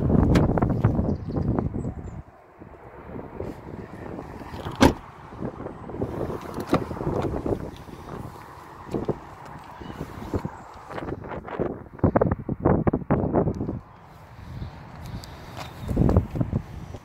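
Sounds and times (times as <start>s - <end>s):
wind rumbling on microphone: 0.0s - 17.0s
car door opening: 4.4s - 5.0s.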